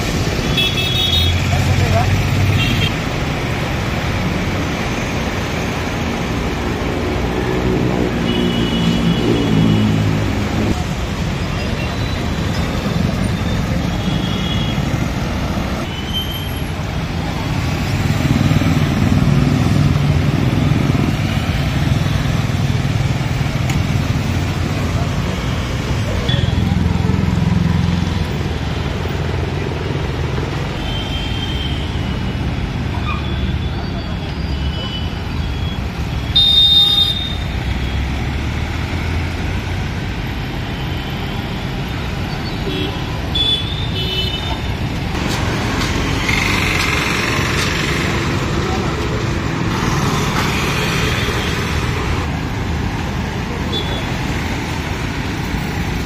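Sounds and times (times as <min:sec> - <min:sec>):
vehicle engines passing: 0:00.0 - 0:15.9, 0:16.5 - 0:56.0.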